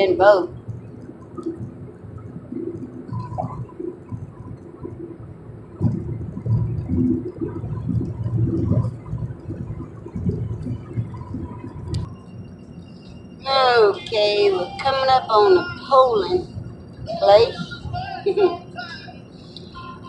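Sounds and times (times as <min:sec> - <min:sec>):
car road and engine rumble: 0:00.0 - 0:20.0.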